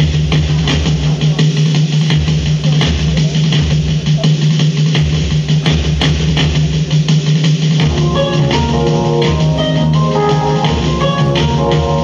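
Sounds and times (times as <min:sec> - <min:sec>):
drum hits: 0:00.0 - 0:12.0.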